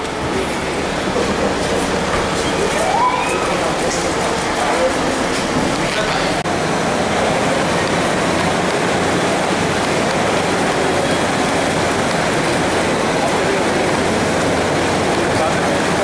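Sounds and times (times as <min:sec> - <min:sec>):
crowd din: 0:00.0 - 0:16.0
traffic noise: 0:00.0 - 0:16.0.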